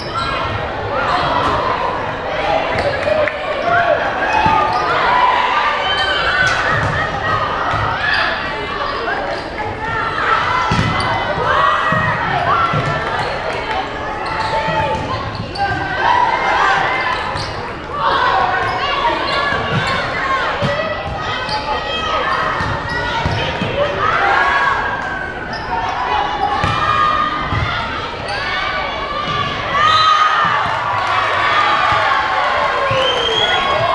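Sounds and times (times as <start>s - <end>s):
spectators talking: 0.0s - 33.9s.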